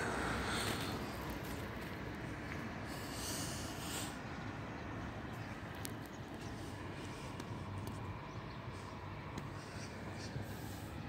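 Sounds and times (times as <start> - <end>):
soft breathy hiss: 2.8 - 4.4.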